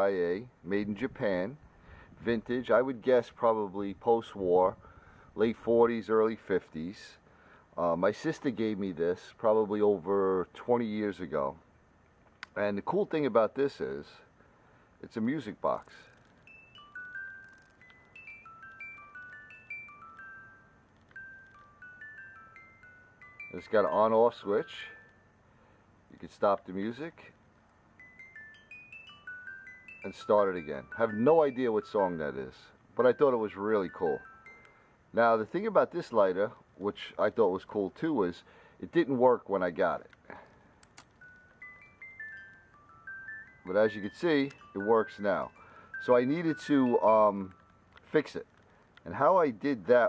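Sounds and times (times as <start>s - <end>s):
music box melody: 15.8s - 25.7s, 27.7s - 36.2s, 40.4s - 49.0s.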